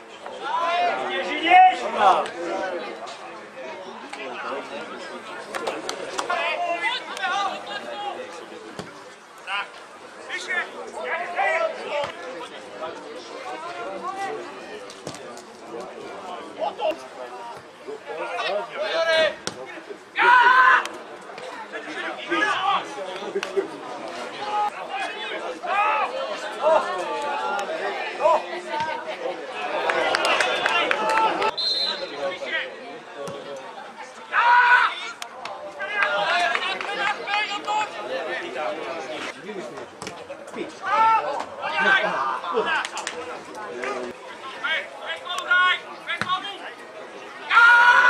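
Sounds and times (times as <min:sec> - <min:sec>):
voices calling and shouting: 0:00.0 - 0:48.0.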